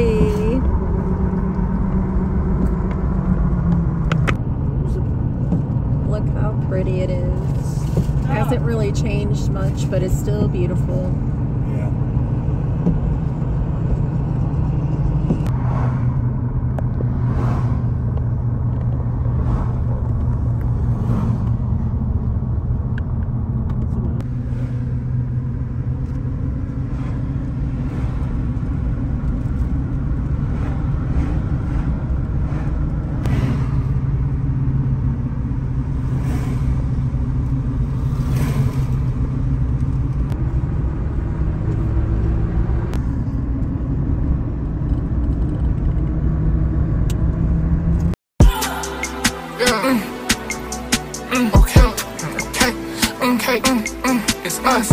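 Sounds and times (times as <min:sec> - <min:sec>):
oncoming cars passing: 0:00.0 - 0:44.8, 0:46.3 - 0:54.9
car road noise and engine hum: 0:00.0 - 0:54.9.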